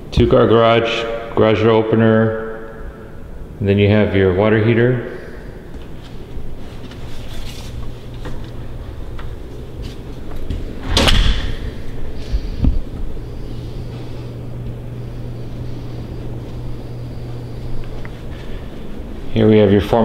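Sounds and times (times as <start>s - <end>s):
steady low hum: 0.0s - 20.0s
door shutting thud: 10.5s - 11.8s.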